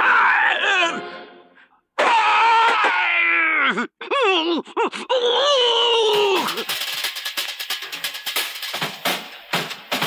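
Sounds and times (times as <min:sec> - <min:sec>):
cartoon wolf yelping in pain: 0:00.0 - 0:01.0.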